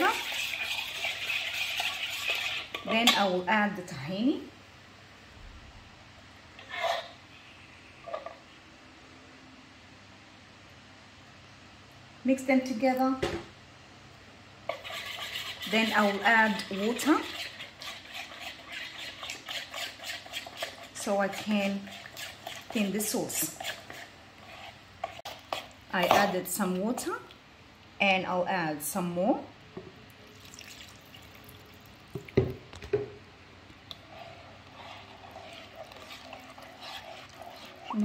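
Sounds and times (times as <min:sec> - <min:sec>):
spoon stirring thick sauce: 0:00.0 - 0:03.2, 0:14.7 - 0:27.0, 0:33.9 - 0:38.0.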